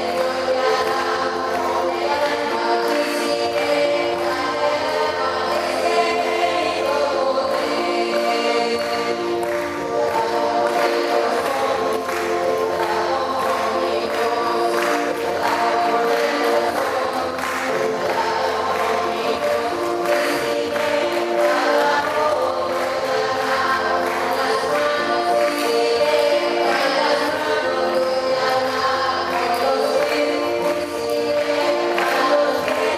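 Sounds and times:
choir singing a hymn: 0.0s - 32.9s.

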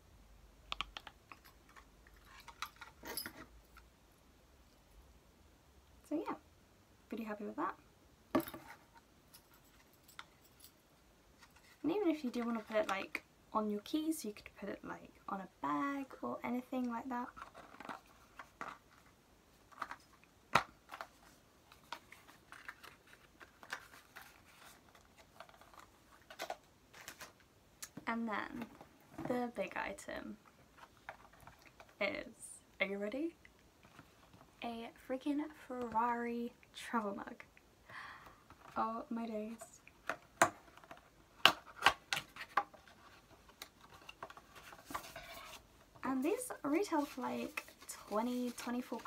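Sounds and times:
small items clicking and rustling: 0.8s - 3.9s, 17.3s - 19.1s, 19.7s - 28.0s, 30.7s - 32.0s.

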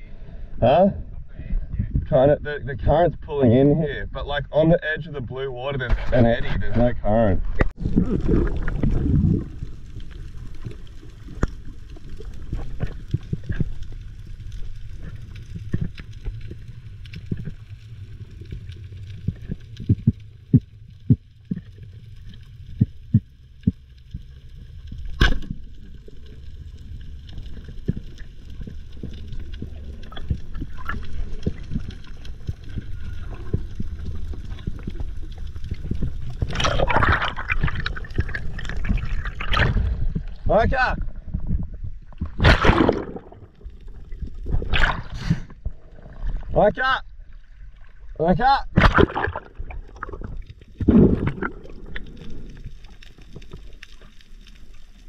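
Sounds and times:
low rumble: 0.0s - 48.2s
sea water gurgling and sloshing: 5.3s - 55.0s.

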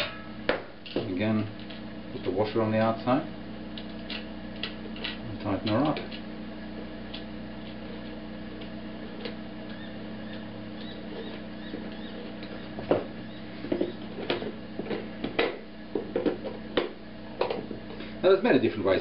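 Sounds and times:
steady background hum: 0.0s - 19.0s.

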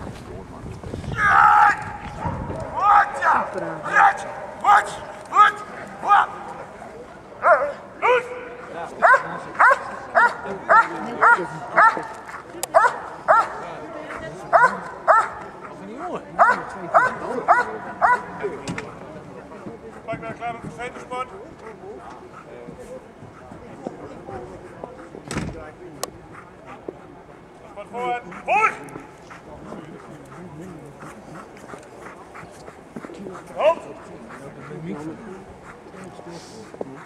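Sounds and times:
murmur of voices: 0.0s - 37.0s
dog barking: 7.4s - 8.4s, 9.0s - 12.1s, 12.7s - 13.6s, 14.5s - 15.4s, 16.4s - 18.3s.

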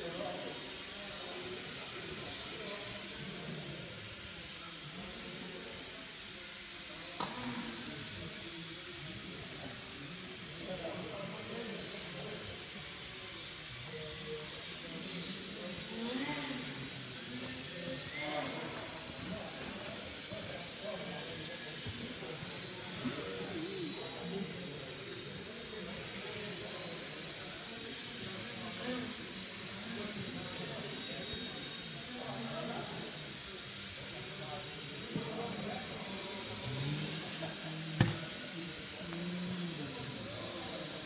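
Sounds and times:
small electric motor whining: 0.0s - 41.0s.

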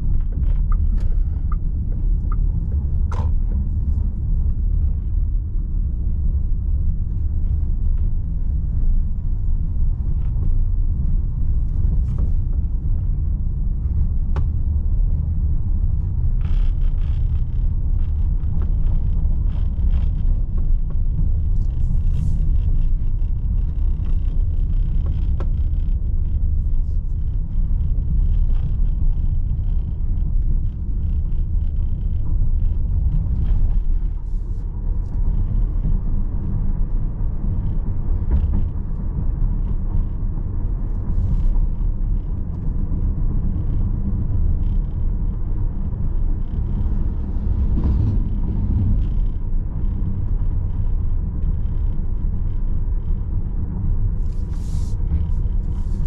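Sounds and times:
road and tyre rumble in cabin: 0.0s - 56.0s.

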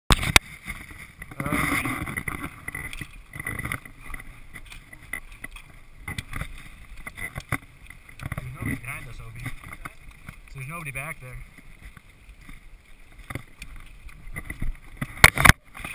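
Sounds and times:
bike knocking and rattling: 0.1s - 15.9s
wind rumble on microphone: 0.1s - 15.9s.

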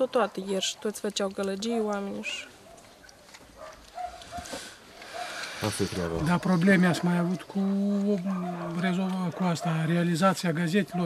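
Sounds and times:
distant dog barking: 0.0s - 1.0s, 2.3s - 11.0s.

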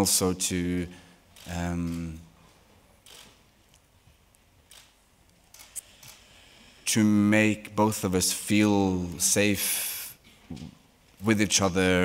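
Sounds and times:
man speaking: 0.0s - 2.2s, 6.8s - 10.2s, 11.2s - 12.0s.

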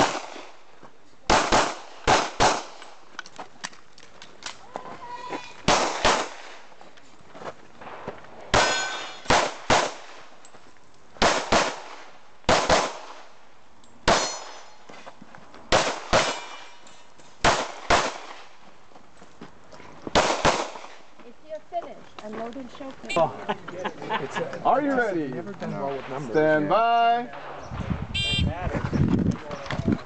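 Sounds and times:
pistol shots: 0.0s - 0.5s, 1.3s - 2.9s, 5.7s - 6.6s, 8.5s - 10.2s, 11.2s - 13.3s, 14.0s - 14.6s, 15.7s - 16.8s, 17.4s - 18.5s, 20.1s - 21.0s.

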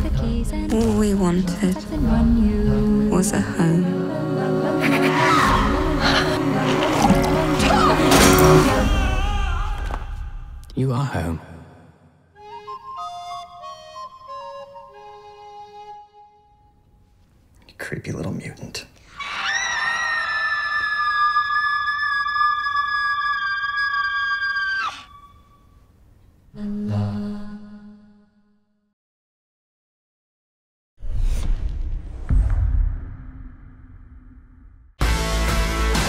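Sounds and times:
boy screaming: 8.8s - 9.9s, 19.2s - 25.4s.

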